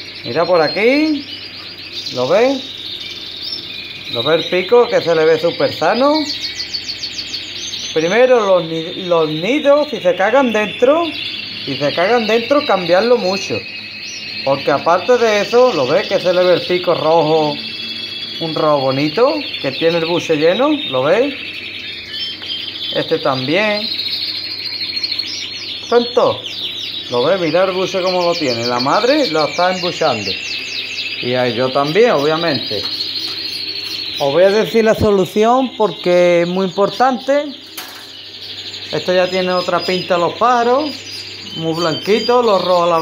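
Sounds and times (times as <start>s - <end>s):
background birdsong: 0.0s - 43.0s
canary singing trills: 0.0s - 43.0s.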